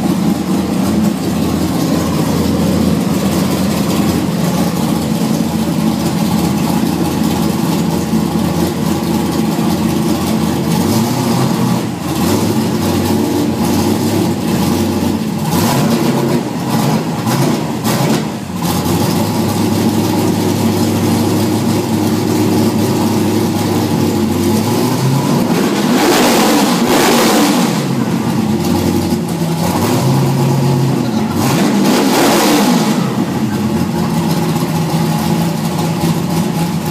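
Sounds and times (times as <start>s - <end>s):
car engine idling and revving: 0.0s - 36.9s.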